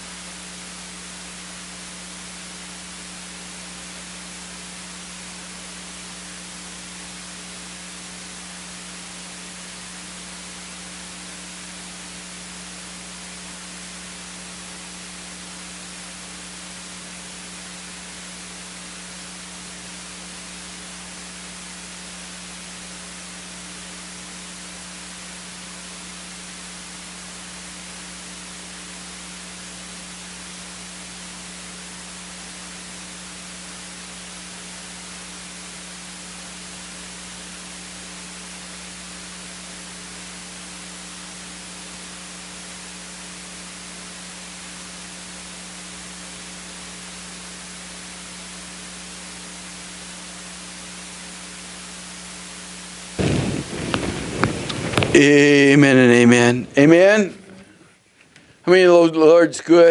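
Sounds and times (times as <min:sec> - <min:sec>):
low electrical hum: 0:00.0 - 0:59.9
static hiss: 0:00.0 - 0:59.9.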